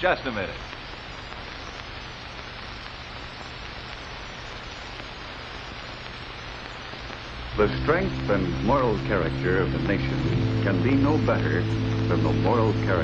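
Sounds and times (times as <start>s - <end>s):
film soundtrack hiss: 0.0s - 13.0s
low even hum: 7.5s - 13.0s.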